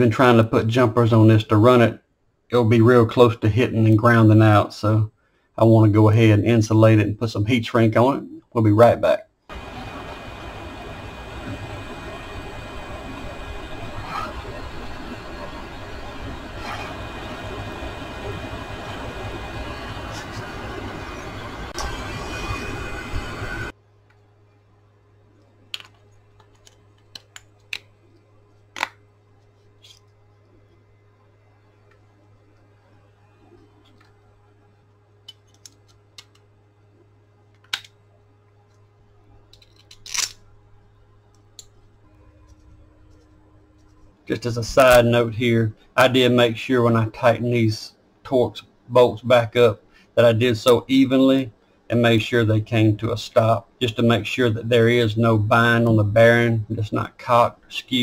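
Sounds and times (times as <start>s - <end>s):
heat gun running: 9.5s - 23.7s.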